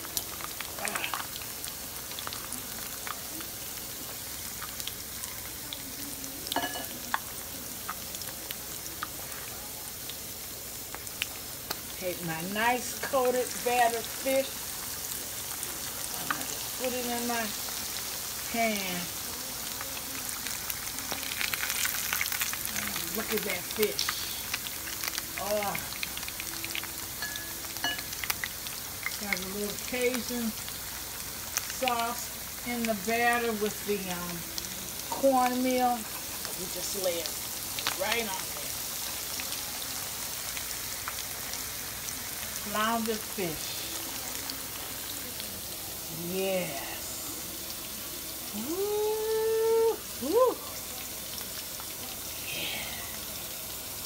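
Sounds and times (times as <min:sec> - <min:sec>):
fish frying in hot oil: 0:00.0 - 0:54.0.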